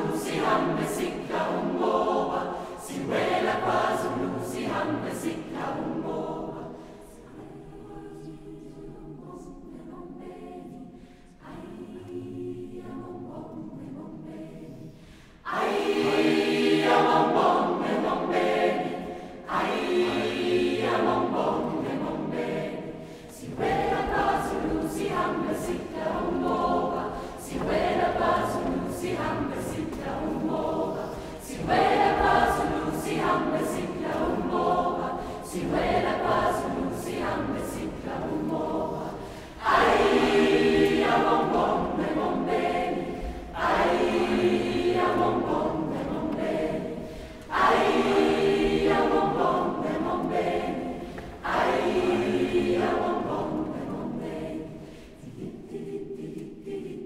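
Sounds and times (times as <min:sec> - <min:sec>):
youth choir singing: 0:00.0 - 0:57.0.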